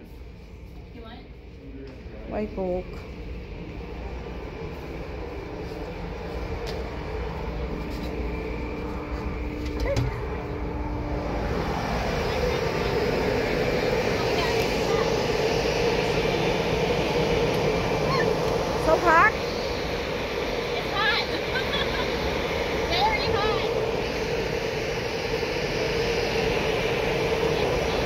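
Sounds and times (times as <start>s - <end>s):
faint hum: 0.0s - 28.0s
steady rushing noise: 2.1s - 28.0s.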